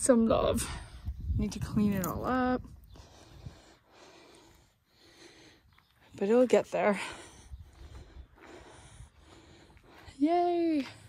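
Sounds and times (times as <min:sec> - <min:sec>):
faint breathing: 0:02.7 - 0:06.2, 0:06.8 - 0:10.2.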